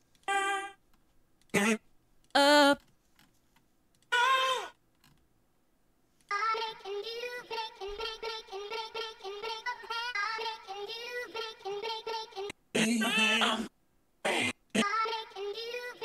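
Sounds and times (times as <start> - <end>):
pitched-up female vocal loop: 2.4 - 2.8, 14.3 - 16.0
short sung female vocal samples: 2.4 - 2.8.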